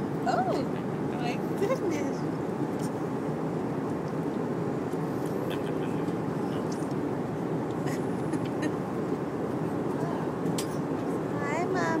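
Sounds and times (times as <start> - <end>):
airliner cabin noise: 0.0 - 12.0.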